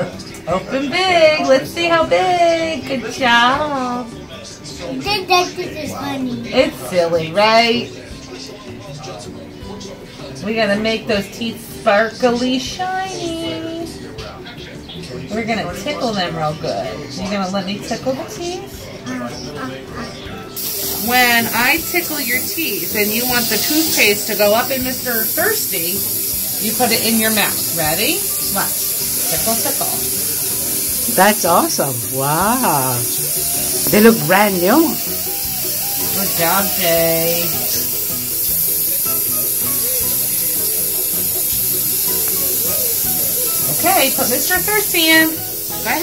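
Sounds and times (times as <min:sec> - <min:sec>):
background music: 0:00.0 - 0:46.0
suction tube sucking hiss: 0:20.6 - 0:46.0.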